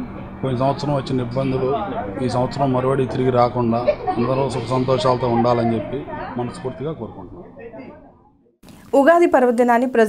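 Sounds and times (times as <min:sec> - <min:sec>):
faint voices: 0:00.0 - 0:08.3
man speaking: 0:00.4 - 0:08.1.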